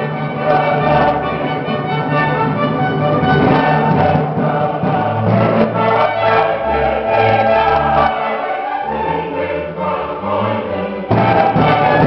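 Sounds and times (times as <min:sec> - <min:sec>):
cello sustained notes: 0:00.0 - 0:12.0
choir singing: 0:00.0 - 0:12.0
string orchestra playing: 0:00.0 - 0:12.0.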